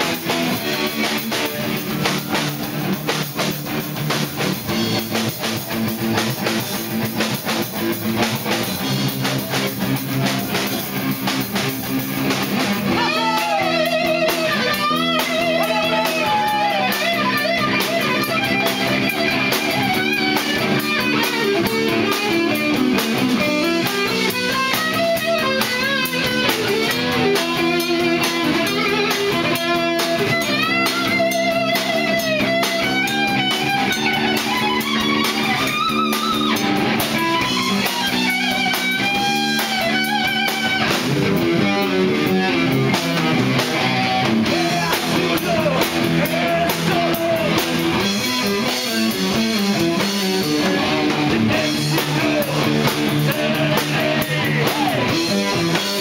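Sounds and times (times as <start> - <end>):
electric guitar lead lines: 0.0 - 56.0
heavy metal band playing: 0.0 - 56.0.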